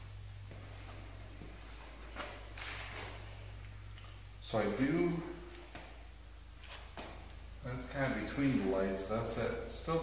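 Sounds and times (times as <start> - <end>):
low electrical hum: 0.0 - 10.0
footsteps shuffling on floor: 0.4 - 3.6, 8.3 - 9.5.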